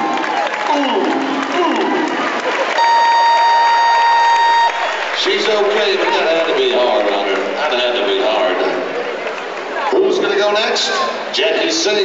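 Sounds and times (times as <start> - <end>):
crowd applauding and cheering: 0.0 - 10.3
steady electronic buzzer: 2.8 - 5.0.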